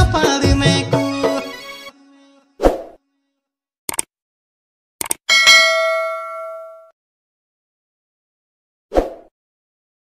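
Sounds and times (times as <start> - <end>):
bright bell ding: 5.3 - 6.9.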